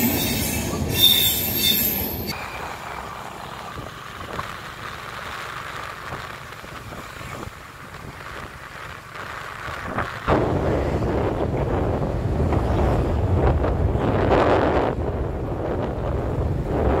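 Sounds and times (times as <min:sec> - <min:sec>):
traffic rumble: 0:00.0 - 0:17.0
wind buffeting microphone: 0:06.1 - 0:17.0.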